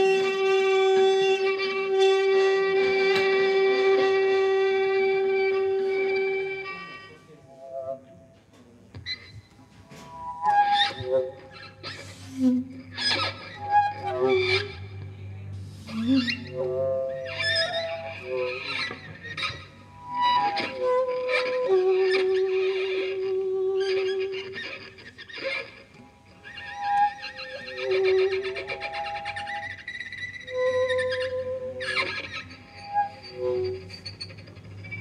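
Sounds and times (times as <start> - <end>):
violin improvising: 0.0 - 8.2, 8.9 - 35.0
saxophone improvising: 10.1 - 34.3.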